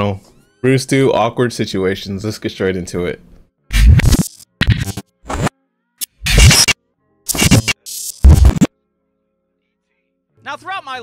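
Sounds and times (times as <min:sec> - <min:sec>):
intro music with record scratching: 0:03.7 - 0:08.7.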